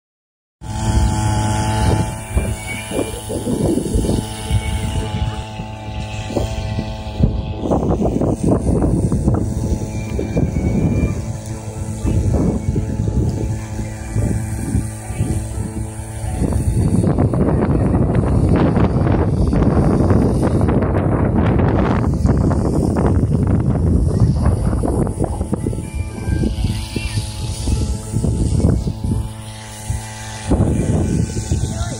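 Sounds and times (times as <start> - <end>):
water pump engine humming: 0.6 - 31.9
wind buffeting microphone: 0.6 - 31.9.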